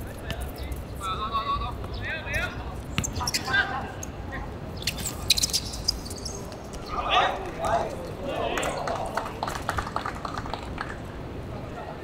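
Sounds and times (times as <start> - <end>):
players calling out: 2.2 - 9.7.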